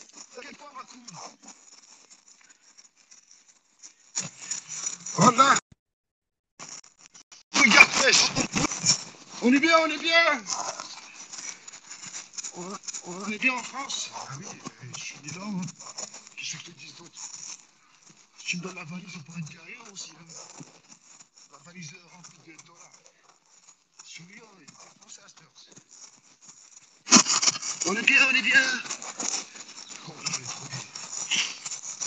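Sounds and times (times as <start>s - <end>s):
rustling and crackle on microphone: 0.0s - 5.6s, 6.6s - 32.0s
man speaking: 5.1s - 5.6s, 7.6s - 11.0s, 12.6s - 15.7s, 27.8s - 29.0s, 29.9s - 30.9s.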